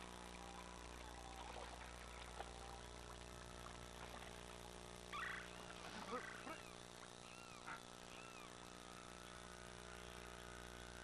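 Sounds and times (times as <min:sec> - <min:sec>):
faint jungle ambience: 0:00.0 - 0:11.0.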